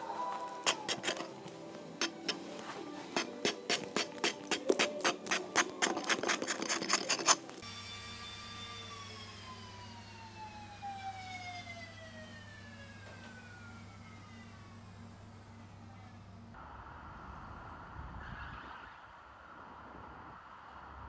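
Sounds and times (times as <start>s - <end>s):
carving tool scraping ice: 0.4s - 1.4s, 2.0s - 7.6s.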